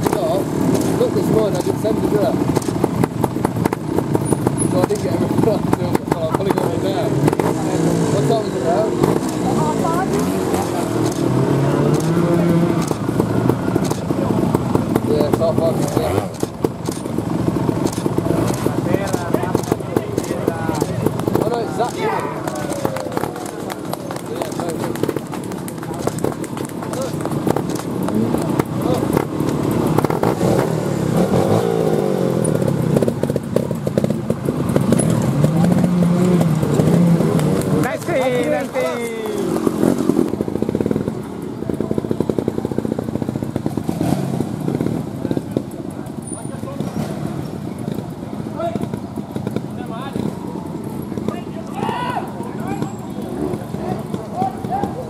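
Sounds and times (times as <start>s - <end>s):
motorcycle engines revving: 0.0s - 55.0s
people's voices: 0.0s - 55.0s.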